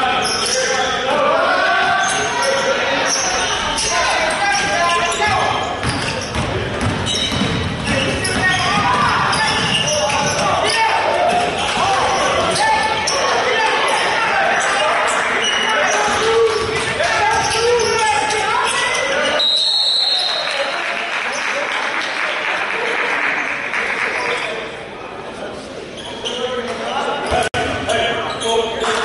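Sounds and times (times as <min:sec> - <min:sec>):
players' voices echoing: 0:00.0 - 0:29.0
referee's whistle: 0:19.2 - 0:20.7.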